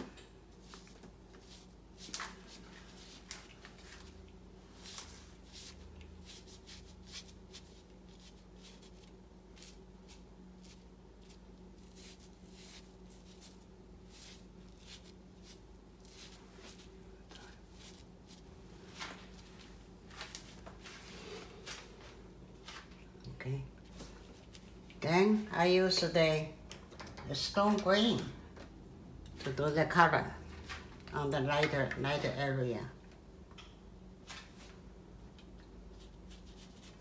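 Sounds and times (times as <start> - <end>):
steady low hum: 0.0 - 37.0
ink brush swishing on paper: 0.6 - 21.9, 35.9 - 37.0.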